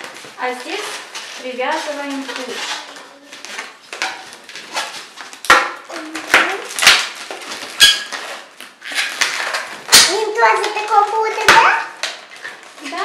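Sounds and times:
rubber balloons rubbing and squeaking: 0.0 - 13.0.

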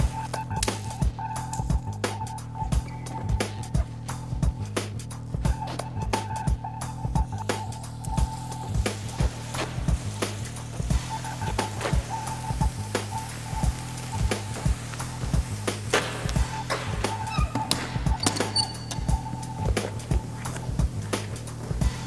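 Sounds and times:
percussive beat: 0.0 - 22.0.

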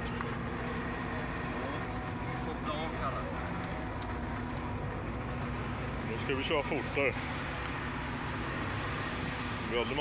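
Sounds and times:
car engine running: 0.0 - 10.0.

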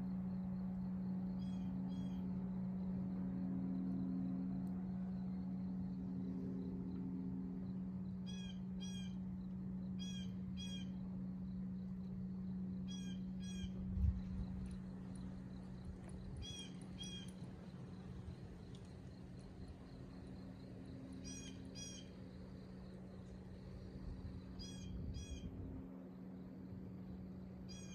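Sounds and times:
steady low hum: 0.0 - 27.9
bird calling in double notes: 8.3 - 9.2, 10.0 - 11.0, 12.9 - 13.8, 21.2 - 22.1.

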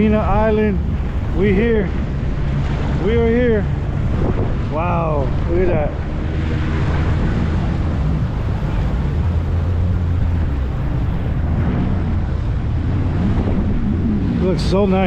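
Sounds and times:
jet ski engine humming: 0.0 - 15.0
water rushing: 0.0 - 15.0
wind buffeting microphone: 0.0 - 15.0.

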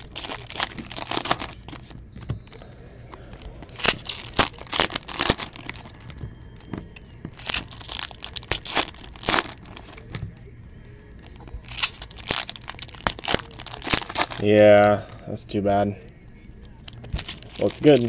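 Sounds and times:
foil wrappers tearing and crinkling: 0.0 - 2.0, 3.1 - 6.1, 7.3 - 10.2, 11.2 - 15.0, 16.8 - 18.0.

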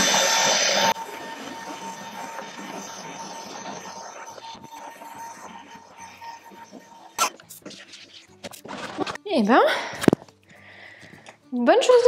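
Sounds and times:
handheld vacuum cleaner hissing: 0.0 - 7.7.

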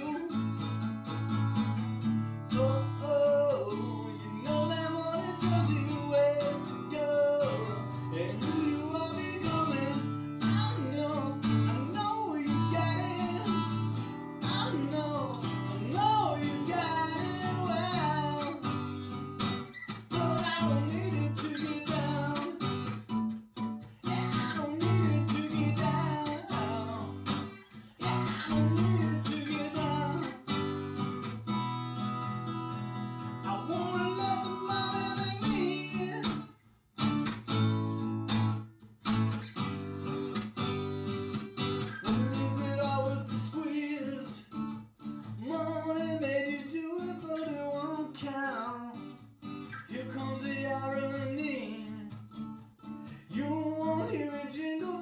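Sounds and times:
man singing: 0.0 - 0.9, 2.5 - 31.4, 33.1 - 36.5, 41.8 - 52.3, 53.1 - 55.0
strummed acoustic guitar: 0.0 - 55.0.

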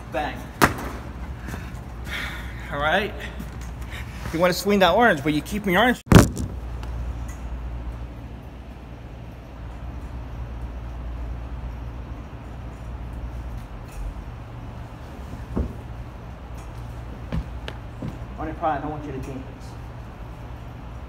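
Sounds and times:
low background hum: 0.0 - 21.0.

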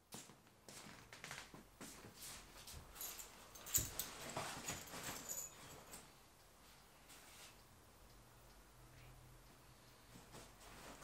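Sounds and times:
soft knocks and rustles: 0.2 - 6.1.

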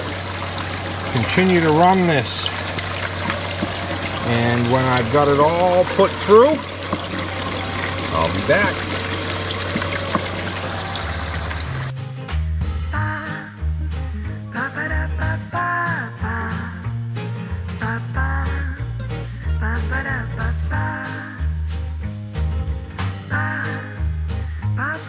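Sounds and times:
water running and splashing: 0.0 - 11.9
background music with bass: 0.0 - 25.0.

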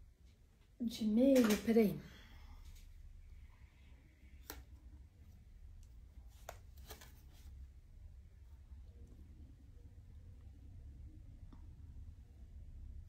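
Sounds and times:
low steady hum: 1.9 - 13.0.

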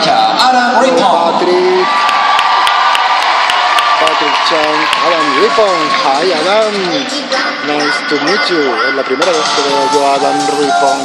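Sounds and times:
crowd cheering and clapping: 1.4 - 7.4
public address announcement: 5.9 - 11.0
long steady high note: 9.3 - 11.0.

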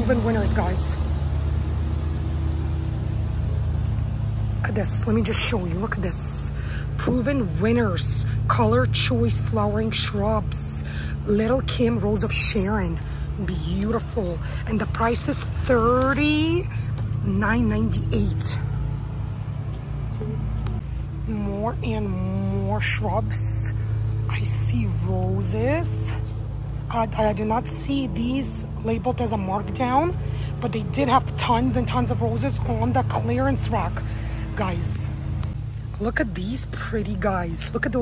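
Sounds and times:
construction machine engine drone: 0.0 - 38.0.

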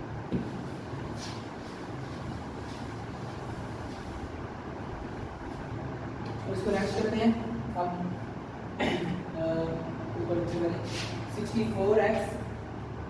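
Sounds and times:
low room hum: 0.0 - 13.0
duster swishing on whiteboard: 0.3 - 4.4, 10.5 - 11.3.

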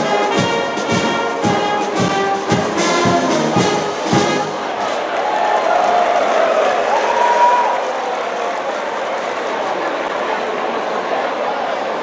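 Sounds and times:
audience applauding and cheering: 0.0 - 12.0.

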